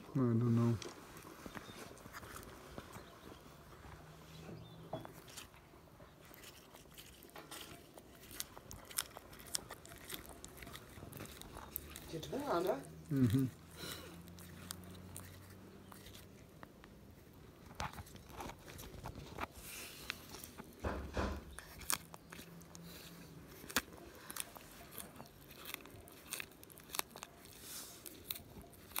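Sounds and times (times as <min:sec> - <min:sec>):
tortoise chewing lettuce: 0:00.0 - 0:29.0.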